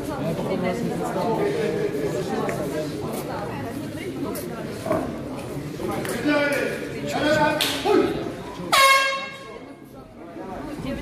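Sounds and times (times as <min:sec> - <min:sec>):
air horn blast: 0:08.7 - 0:09.6.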